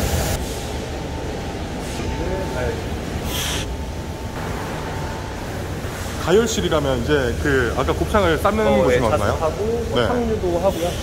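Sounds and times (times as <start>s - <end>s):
ventilation and machinery running: 0.0s - 11.0s.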